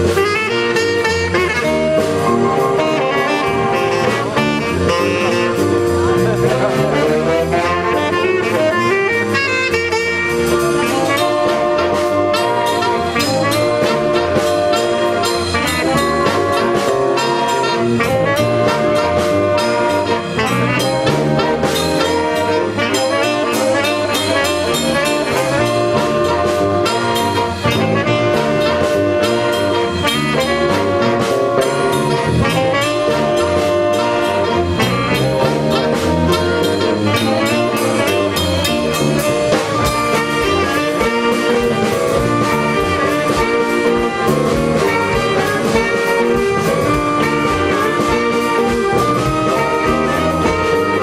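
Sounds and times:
drum kit steady beat: 0.0s - 51.0s
saxophones playing together: 0.0s - 51.0s.

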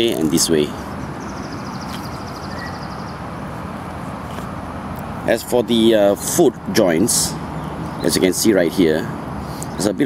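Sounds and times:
outdoor background rumble: 0.0s - 10.0s.

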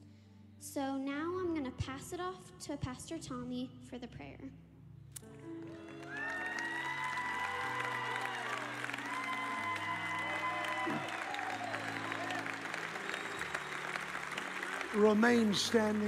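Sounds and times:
soft background music chords: 0.0s - 16.0s
audience applauding: 5.2s - 16.0s.

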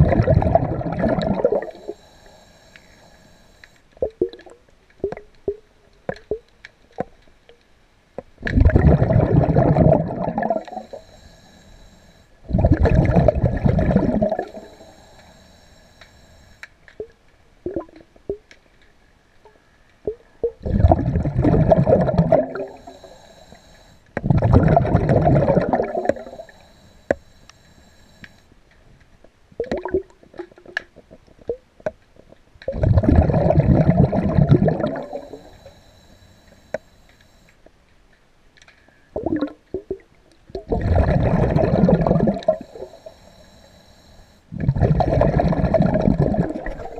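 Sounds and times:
air bubbles gurgling: 0.0s - 2.0s, 8.4s - 10.9s, 12.4s - 14.8s, 20.4s - 22.9s, 24.2s - 26.5s, 32.7s - 35.4s, 40.6s - 42.9s, 44.5s - 46.9s
diver breathing underwater: 0.0s - 3.8s, 8.5s - 16.7s, 20.6s - 28.5s, 32.9s - 37.5s, 40.7s - 46.9s
faint high hiss: 0.1s - 4.0s, 9.2s - 16.7s, 22.0s - 24.1s, 24.9s - 28.5s, 34.0s - 37.6s, 41.8s - 44.5s.

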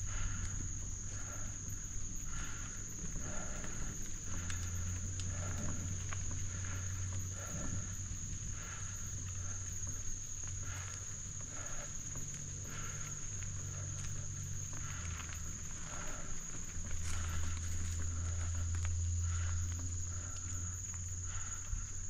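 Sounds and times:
high-pitched insect drone: 0.0s - 22.0s
low steady rumble: 0.0s - 22.0s.

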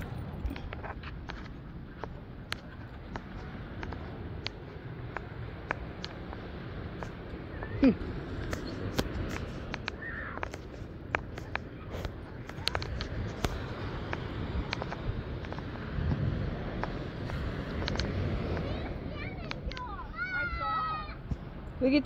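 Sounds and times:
ocean surf breaking on beach: 1.4s - 22.0s.

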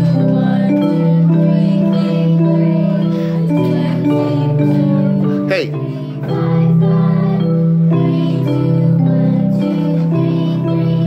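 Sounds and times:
electronic keyboard playing: 0.0s - 11.0s.

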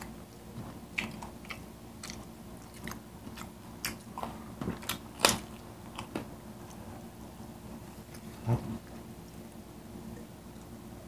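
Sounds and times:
chewing clicks: 1.0s - 6.8s.

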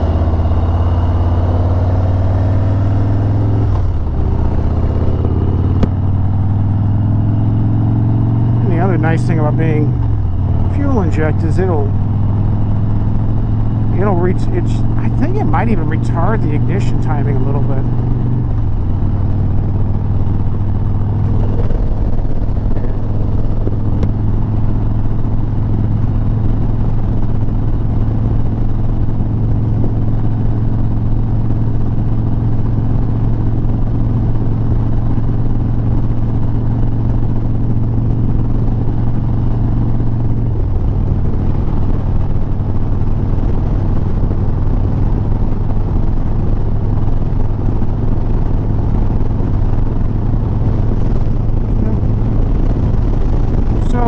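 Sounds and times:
motorcycle engine cruising: 0.0s - 54.0s
rush of riding wind: 0.0s - 54.0s.

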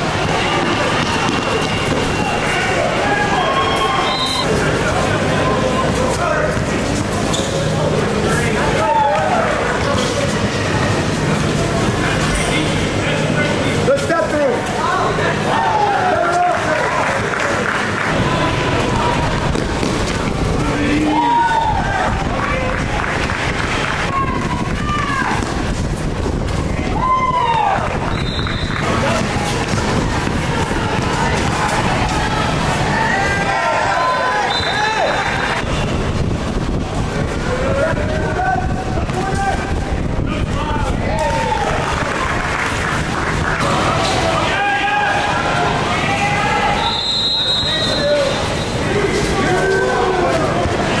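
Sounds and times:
people talking and calling out: 0.0s - 51.0s
spectator chatter: 0.0s - 51.0s
referee whistle blast: 3.3s - 4.5s, 28.1s - 28.8s, 34.4s - 35.8s, 46.7s - 48.4s
sneakers squeaking on court: 5.7s - 7.8s
basketball bouncing: 18.8s - 20.6s, 28.1s - 32.0s.

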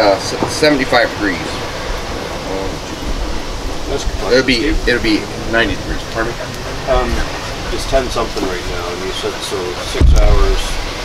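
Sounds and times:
outdoor hiss: 0.0s - 11.0s
low rumble: 0.3s - 11.0s.

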